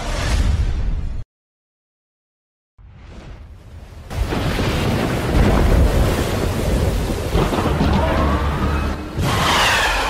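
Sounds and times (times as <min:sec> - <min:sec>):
deep thunder rumbling: 0:04.1 - 0:09.7.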